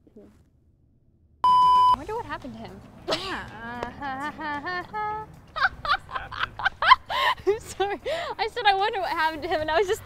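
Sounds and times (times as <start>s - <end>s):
young woman laughing hard: 3.1s - 7.5s.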